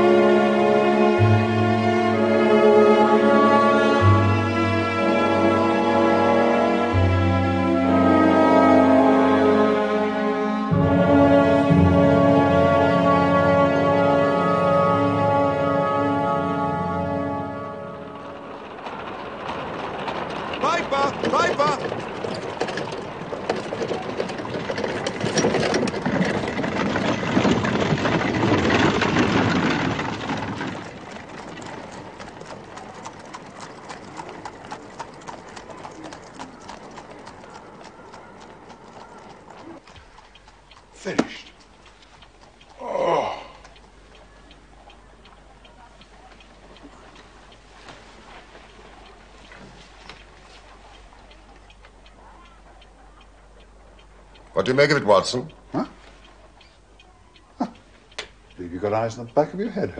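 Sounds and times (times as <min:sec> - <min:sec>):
horse hooves clip-clopping: 0:17.5 - 0:59.9
indistinct voices: 0:17.9 - 0:26.8, 0:40.8 - 0:59.9
faint ticks: 0:31.0 - 0:59.9.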